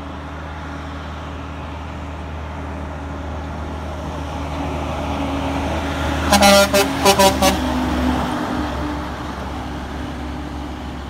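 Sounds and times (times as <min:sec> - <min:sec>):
diesel truck engine droning: 0:00.0 - 0:11.0.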